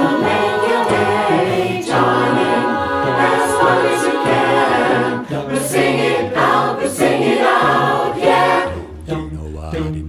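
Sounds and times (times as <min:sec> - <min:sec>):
a cappella choir singing: 0:00.0 - 0:10.0
low bass voice part: 0:07.6 - 0:10.0.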